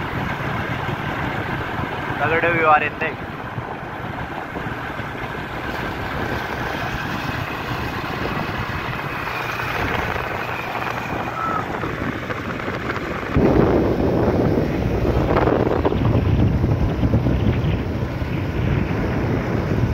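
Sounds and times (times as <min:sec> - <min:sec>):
motorcycle engine running: 0:00.0 - 0:19.9
wind buffeting microphone: 0:00.0 - 0:19.9.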